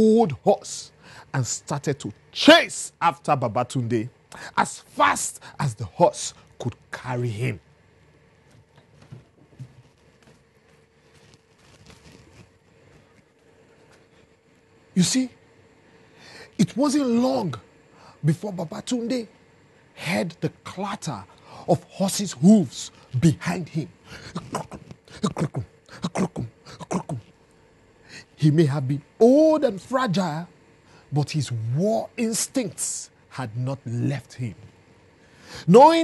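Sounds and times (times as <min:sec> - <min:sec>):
man imitating galloping hooves: 0:24.2 - 0:27.2.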